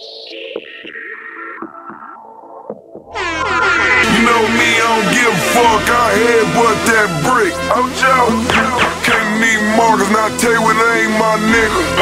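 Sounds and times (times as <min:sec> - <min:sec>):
air horn sound effect: 0:03.2 - 0:12.0
trap beat: 0:04.0 - 0:12.0.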